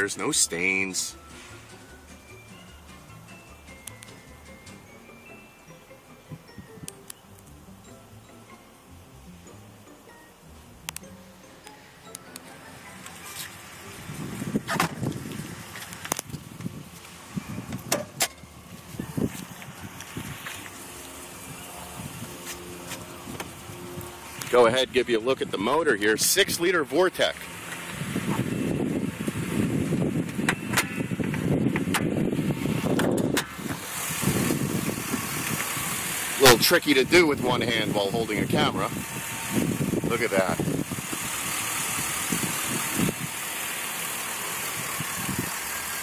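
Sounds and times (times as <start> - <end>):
faint music with chime-like notes: 1.1 - 14.1, 17.3 - 17.8
car door knocks and clunks: 14.6 - 15.3, 17.6 - 18.4.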